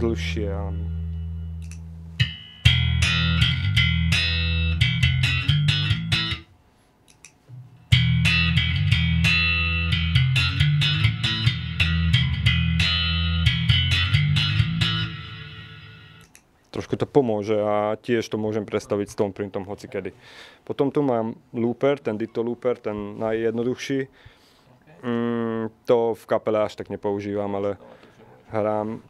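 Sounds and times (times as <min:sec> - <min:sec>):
slap bass with reverb: 0:00.0 - 0:06.5, 0:07.6 - 0:16.2.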